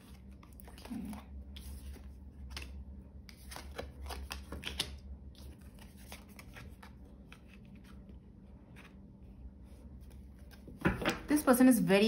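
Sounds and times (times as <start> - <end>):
cards clicking and rustling: 0.0 - 8.1
cards shuffling and sliding: 0.0 - 9.0.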